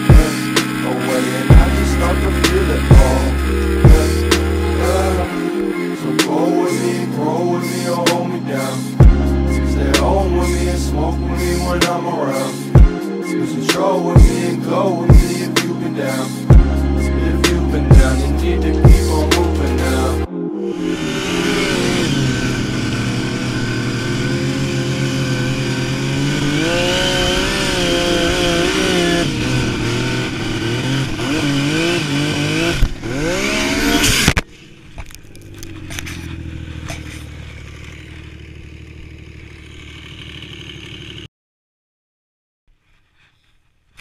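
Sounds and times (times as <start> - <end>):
snowmobile engine revving: 0.0 - 41.3.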